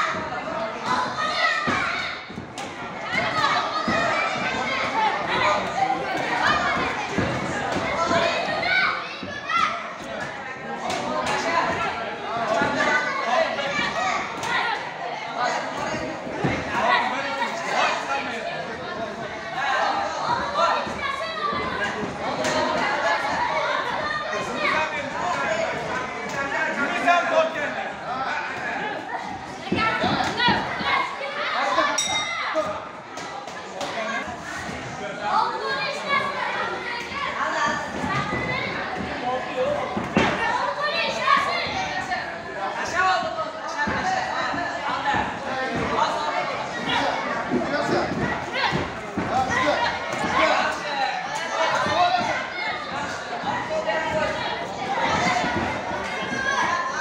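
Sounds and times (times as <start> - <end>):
children shouting and chattering: 0.0 - 57.0.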